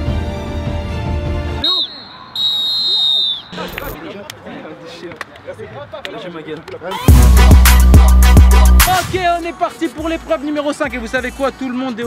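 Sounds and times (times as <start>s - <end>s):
background music: 0.0s - 1.6s, 6.9s - 12.0s
sports whistle blasts: 1.6s - 3.7s
players shouting and chatting: 1.6s - 12.0s.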